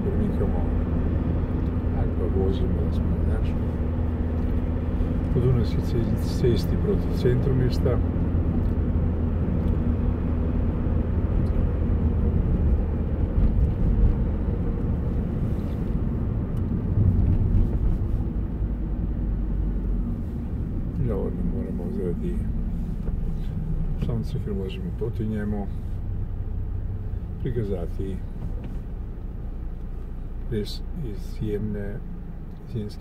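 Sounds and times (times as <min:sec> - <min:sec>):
car engine and tyres rumbling: 0:00.0 - 0:33.0.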